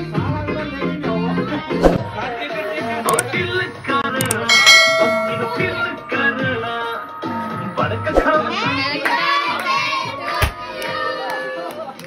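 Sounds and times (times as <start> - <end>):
bright bell ding: 4.2 - 6.0.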